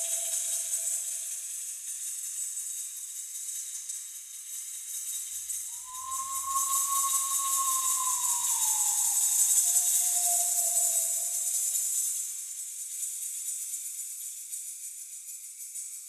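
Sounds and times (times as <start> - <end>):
handheld rattle shaking: 0.0 - 16.0
soft gliding pure tone: 5.8 - 11.8.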